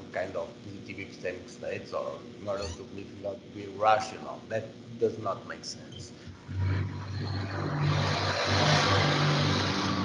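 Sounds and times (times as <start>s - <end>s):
motor vehicle passing: 6.4s - 10.0s.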